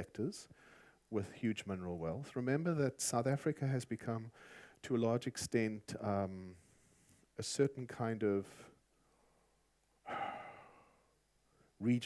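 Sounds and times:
man breathing: 0:00.5 - 0:01.1, 0:04.3 - 0:04.8, 0:09.0 - 0:11.8.

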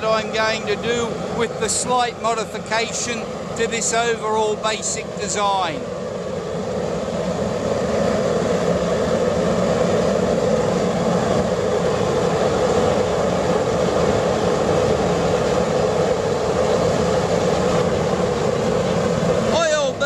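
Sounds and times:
oil burner roaring with blower: 0:00.0 - 0:20.0.

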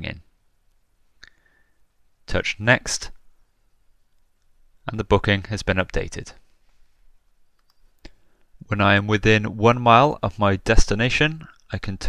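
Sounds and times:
man narrating: 0:02.3 - 0:03.2, 0:04.9 - 0:06.4, 0:08.6 - 0:12.0.

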